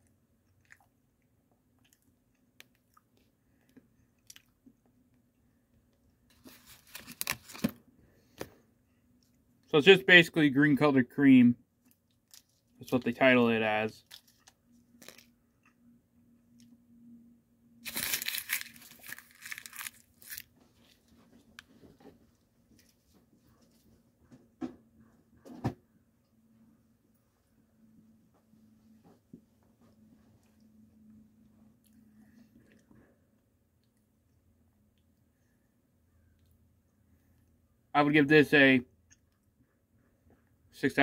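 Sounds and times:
soft chewing mouth clicks: 0:00.0 - 0:04.9, 0:31.8 - 0:33.0
candy wrapper crinkling: 0:06.3 - 0:07.8, 0:14.0 - 0:15.3, 0:17.8 - 0:20.6.

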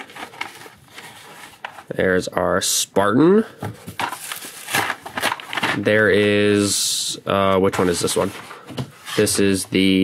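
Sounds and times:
plastic crinkling and clicks: 0:04.0 - 0:05.9.

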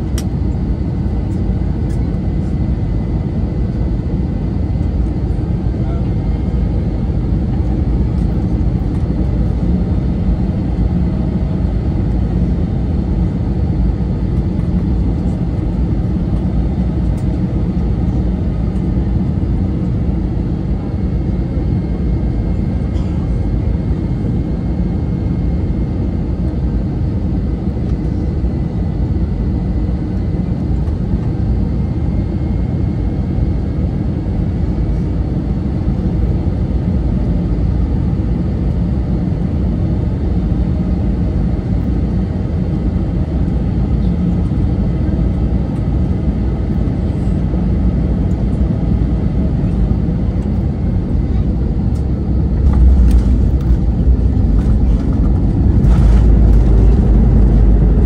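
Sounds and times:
engine and airflow rumble: 0:00.0 - 0:58.0
high engine whine: 0:00.0 - 0:58.0.

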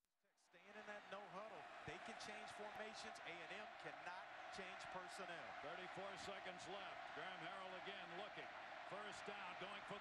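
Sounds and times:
stadium crowd noise: 0:00.4 - 0:10.0
football commentator speaking: 0:00.5 - 0:10.0.

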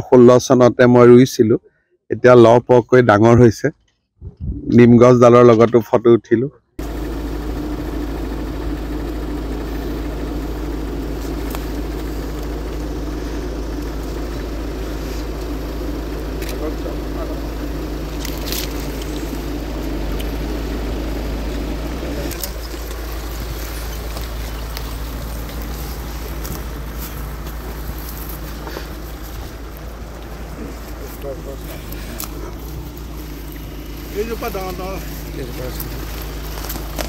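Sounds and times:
continuous low rumble: 0:06.8 - 0:37.0.

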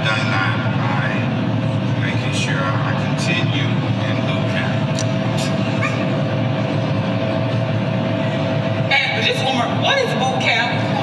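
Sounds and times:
faint steady hum: 0:00.0 - 0:11.0
woman speaking: 0:08.9 - 0:11.0.

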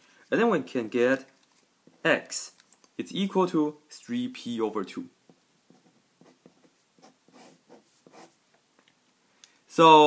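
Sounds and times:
pen writing on paper: 0:05.7 - 0:08.3.

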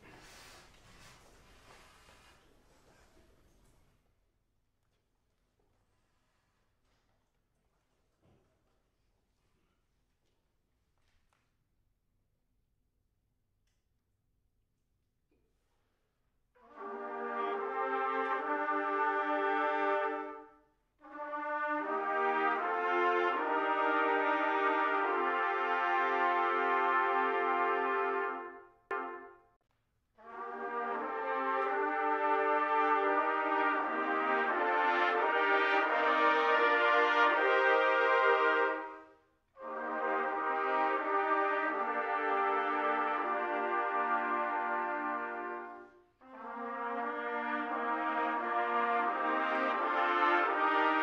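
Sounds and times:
trumpet ensemble playing chords: 0:16.6 - 0:29.5, 0:30.2 - 0:51.0.

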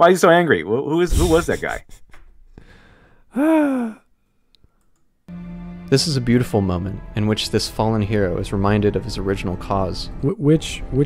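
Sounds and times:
man sighing: 0:02.6 - 0:04.1
background music: 0:05.3 - 0:11.0.

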